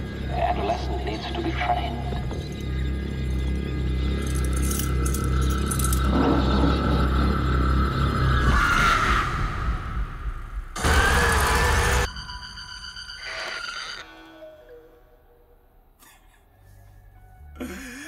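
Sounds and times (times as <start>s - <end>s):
dark music: 0.0s - 18.0s.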